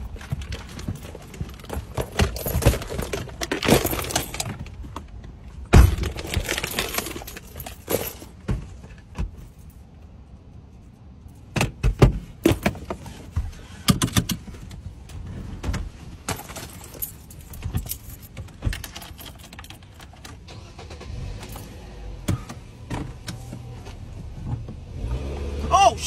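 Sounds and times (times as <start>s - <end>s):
car keys jangling: 0.0s - 4.9s, 5.8s - 8.4s, 9.3s - 11.6s, 16.3s - 22.5s.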